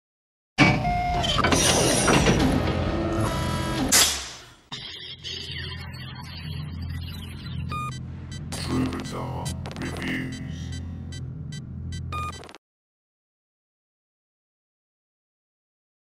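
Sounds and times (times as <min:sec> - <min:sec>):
electronic intro music: 0:04.7 - 0:12.6
short electronic beeps: 0:04.7 - 0:12.6.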